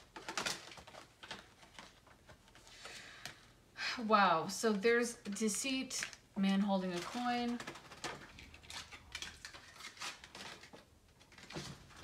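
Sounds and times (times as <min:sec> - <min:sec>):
cards clicking and rustling: 0:00.0 - 0:03.4, 0:06.9 - 0:12.0.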